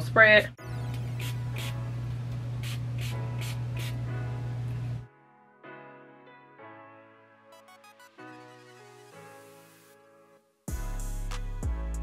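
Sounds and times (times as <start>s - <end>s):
pump spray bottle spritzing: 2.6s - 4.0s.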